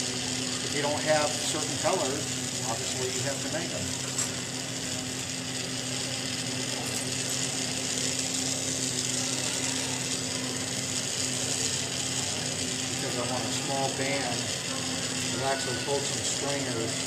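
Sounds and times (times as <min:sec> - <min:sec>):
torch flame hissing: 0:00.0 - 0:17.0.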